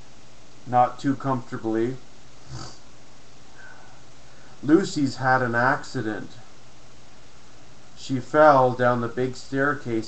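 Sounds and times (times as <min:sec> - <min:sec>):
background hiss: 0:00.0 - 0:10.0
soft breath through nose: 0:02.4 - 0:02.9, 0:03.6 - 0:04.6.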